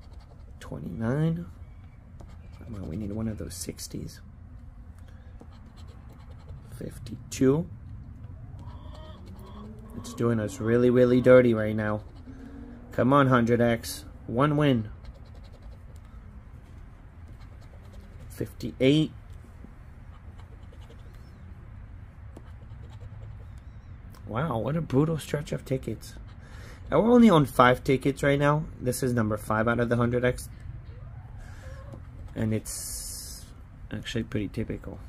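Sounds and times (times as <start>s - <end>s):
scratching scratch-off ticket: 0.0s - 1.0s, 2.1s - 4.1s, 5.3s - 12.4s, 14.4s - 19.2s, 20.0s - 21.3s, 22.2s - 23.6s, 31.8s - 33.4s
low steady hum: 0.0s - 35.0s.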